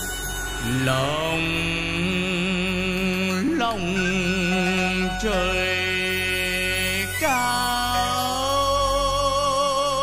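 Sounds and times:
instrumental backing: 0.0 - 9.6
man singing with vibrato: 0.6 - 10.0.

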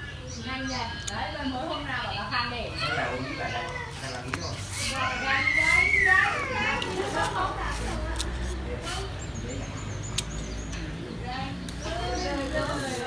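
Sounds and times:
high voices in background: 0.0 - 13.0.

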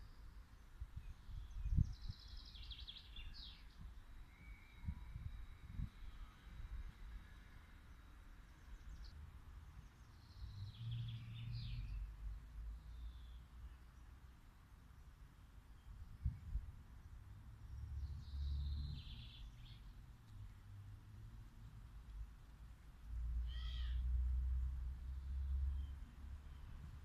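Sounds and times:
small birds chirping: 0.0 - 4.9, 17.0 - 20.5.

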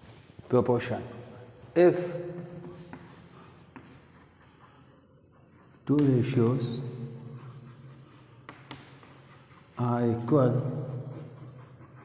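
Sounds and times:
chalk scratching on chalkboard: 2.0 - 12.0
chalk tap: 2.4 - 4.8, 5.4 - 12.0.

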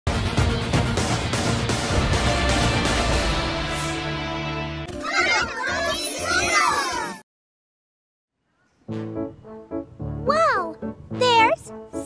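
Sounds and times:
cartoon jingle music: 1.9 - 7.2.

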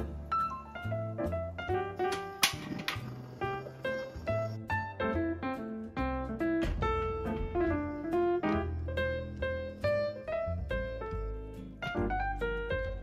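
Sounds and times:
instrumental background music: 0.0 - 13.0.

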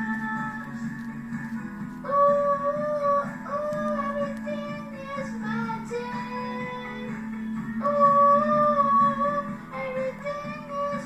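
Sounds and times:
high voice singing a song: 7.8 - 11.0.

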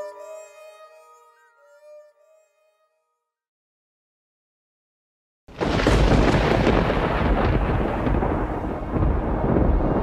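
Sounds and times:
thunder rumbling: 5.5 - 10.0
rain: 5.6 - 10.0.

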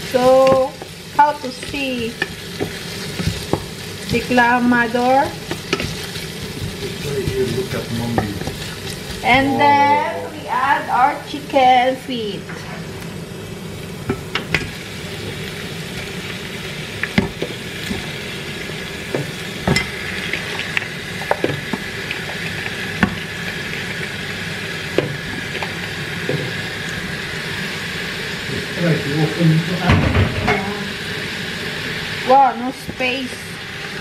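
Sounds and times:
sizzling in a pot: 0.0 - 34.0.

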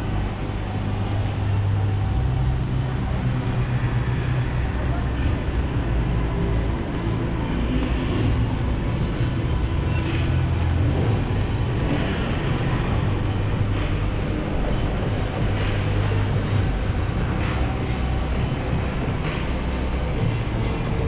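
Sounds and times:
indistinct voices of passers-by: 0.0 - 21.0
road traffic rumble: 0.0 - 21.0.

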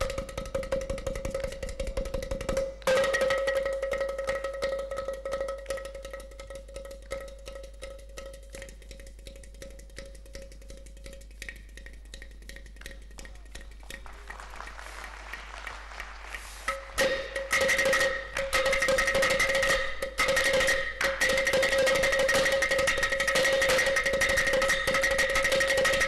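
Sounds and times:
clay pot drums hand played: 0.0 - 26.0.

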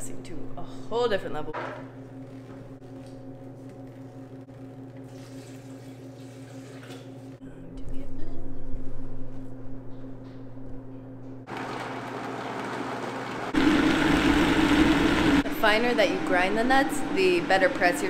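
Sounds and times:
blender grinding nuts: 11.5 - 18.0.

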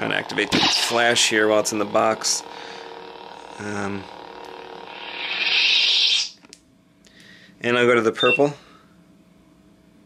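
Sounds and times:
lightsaber low hum: 0.0 - 6.6
loud hissing effect: 4.9 - 6.4.

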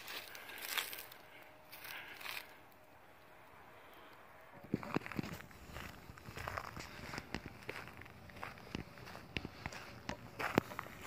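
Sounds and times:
footsteps on gravel and dry grass: 0.0 - 2.8, 4.6 - 11.0.

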